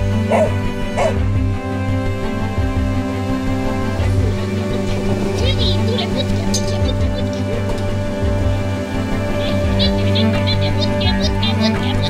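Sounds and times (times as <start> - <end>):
background music: 0.0 - 12.0
dog barking: 0.1 - 1.2.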